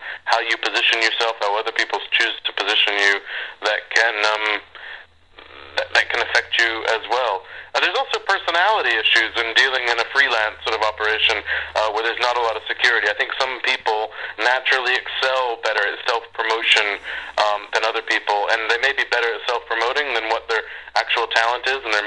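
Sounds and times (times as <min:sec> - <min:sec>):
man talking: 0:00.1 - 0:22.0.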